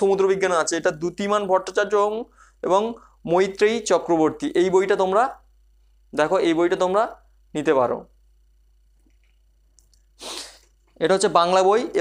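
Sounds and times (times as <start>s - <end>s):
person breathy huff: 10.2s - 10.6s.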